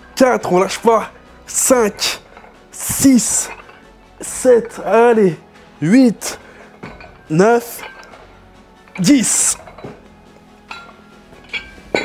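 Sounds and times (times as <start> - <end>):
metal weight plates clinking: 1.8 - 4.9, 6.8 - 10.0, 10.6 - 12.0.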